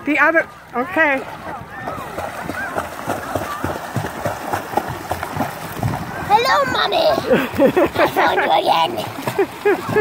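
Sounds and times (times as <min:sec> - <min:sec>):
feet splashing in water: 0:00.0 - 0:10.0.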